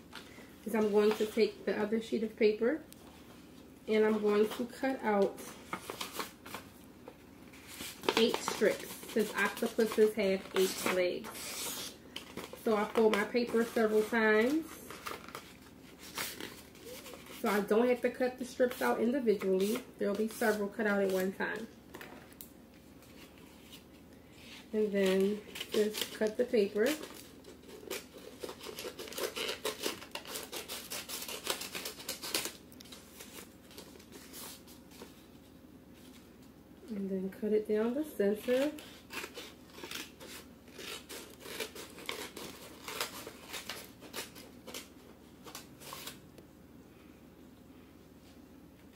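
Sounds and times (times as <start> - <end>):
paper rustling and crackling: 4.1 - 17.6, 38.4 - 46.2
scissors snipping paper: 25.0 - 32.9, 38.4 - 46.1.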